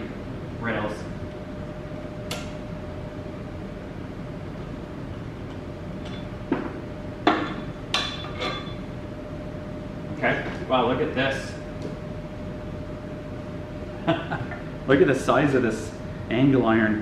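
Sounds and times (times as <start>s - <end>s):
furnace humming: 0.0s - 17.0s.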